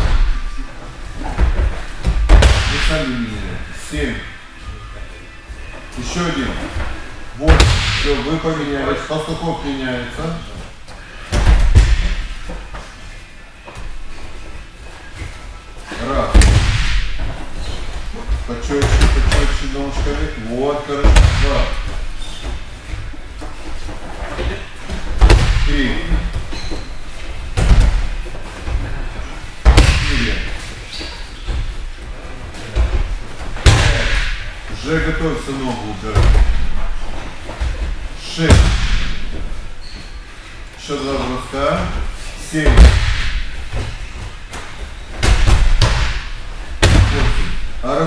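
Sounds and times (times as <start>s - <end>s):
bodies thudding on mats: 0.0s - 3.0s, 10.6s - 12.9s, 16.0s - 35.0s, 36.0s - 40.9s, 41.8s - 47.8s.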